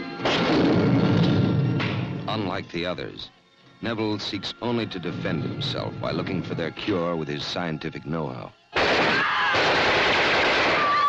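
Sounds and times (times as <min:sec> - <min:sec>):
automatic gunfire: 0:08.8 - 0:11.0.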